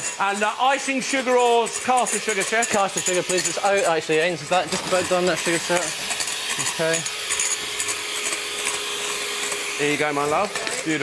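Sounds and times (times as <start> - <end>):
electric hand mixer whisking: 0.0 - 11.0.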